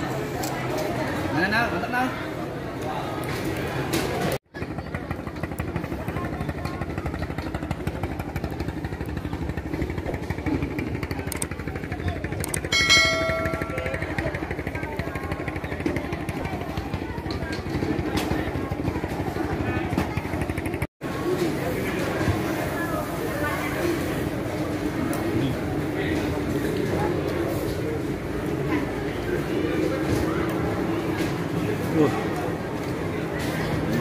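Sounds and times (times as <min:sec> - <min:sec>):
small engine running: 0:04.6 - 0:22.5.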